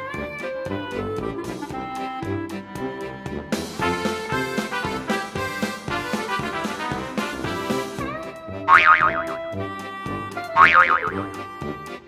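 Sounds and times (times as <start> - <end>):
upbeat background music: 0.9 - 12.0
cartoon boing sound effects: 8.7 - 9.4, 10.6 - 11.2.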